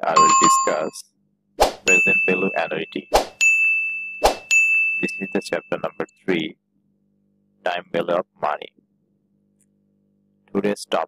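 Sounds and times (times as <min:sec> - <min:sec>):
bright ringing ding: 0:00.0 - 0:01.0, 0:01.9 - 0:05.6.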